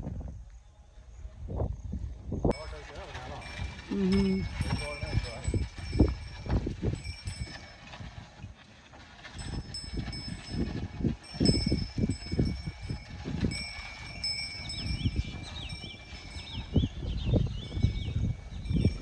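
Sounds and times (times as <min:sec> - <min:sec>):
wind rumbling on microphone: 0:00.0 - 0:19.0
bell-like ringing tones: 0:02.5 - 0:08.3, 0:09.2 - 0:19.0.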